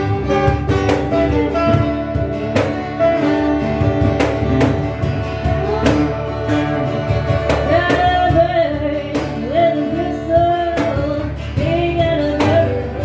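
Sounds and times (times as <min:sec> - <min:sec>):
strummed guitars: 0:00.0 - 0:13.0
woman singing: 0:07.3 - 0:13.0.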